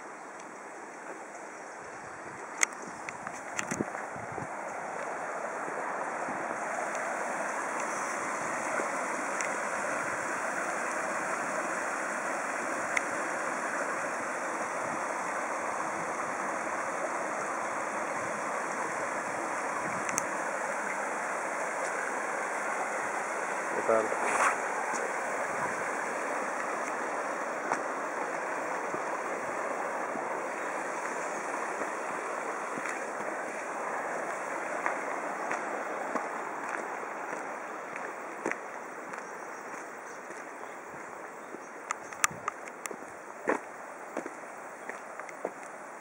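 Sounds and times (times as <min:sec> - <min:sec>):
stream rushing over a weir: 0:00.0 - 0:46.0.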